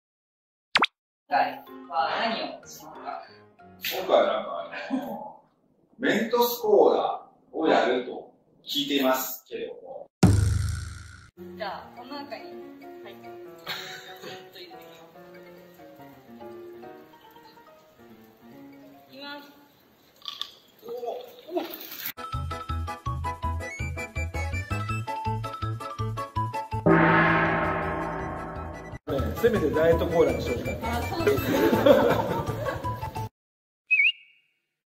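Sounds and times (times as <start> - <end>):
cartoon pop sound effect: 0.7 - 1.0
background music: 1.3 - 5.0, 11.4 - 19.4, 22.2 - 33.3.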